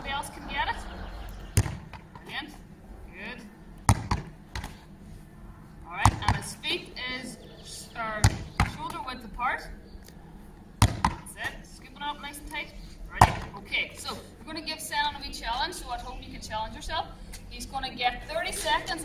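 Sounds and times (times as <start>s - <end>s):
ball thudding against concrete: 1.5s - 2.3s, 3.8s - 4.8s, 6.0s - 6.6s, 8.2s - 9.0s, 10.8s - 11.6s, 13.2s - 13.6s.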